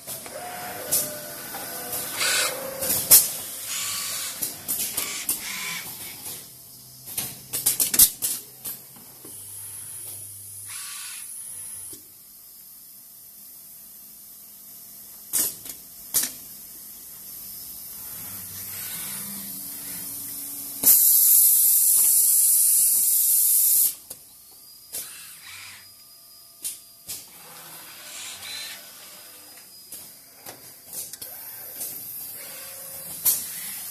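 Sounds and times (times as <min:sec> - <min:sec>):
loud compressed air hiss: 0:17.4 - 0:24.0.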